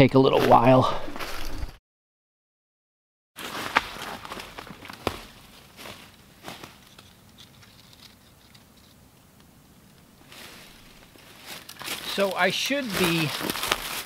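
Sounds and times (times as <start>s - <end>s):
footsteps crunching dry leaves: 3.4s - 7.8s, 10.2s - 14.0s.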